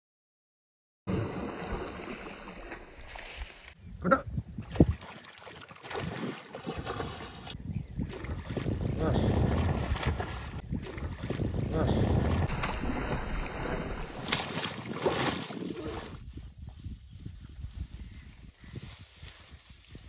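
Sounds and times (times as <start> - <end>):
wind rushing over microphone: 3.8 - 5.0, 6.8 - 20.0
fish splashing at water surface: 12.2 - 16.1.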